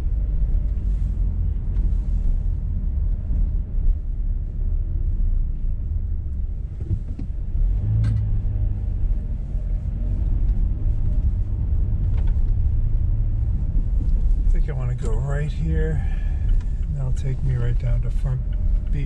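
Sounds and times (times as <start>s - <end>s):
car engine and road rumble: 0.0s - 19.0s.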